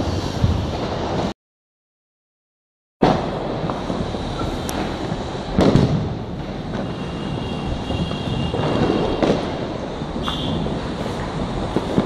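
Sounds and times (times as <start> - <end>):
loud firework bang with echo: 0.0 - 1.2, 3.0 - 10.8
distant fireworks: 0.0 - 1.3, 3.0 - 12.0.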